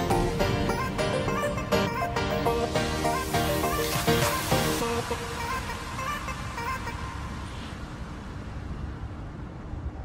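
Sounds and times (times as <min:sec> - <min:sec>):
background music: 0:00.0 - 0:07.7
low outdoor rumble: 0:05.0 - 0:10.0.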